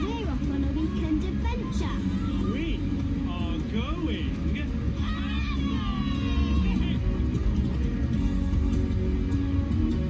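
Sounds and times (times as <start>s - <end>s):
children talking and exclaiming: 0.0s - 3.0s, 4.9s - 7.0s.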